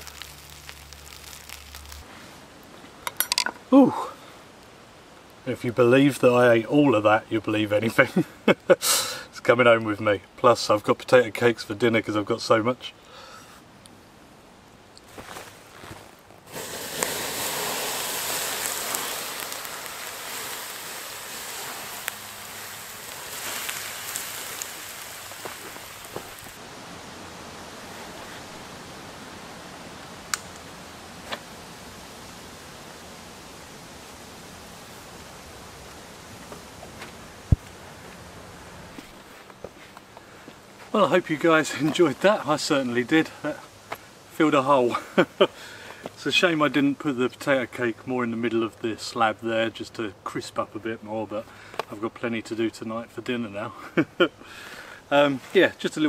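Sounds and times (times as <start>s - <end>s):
rushing outdoor noise: 0.0s - 52.8s.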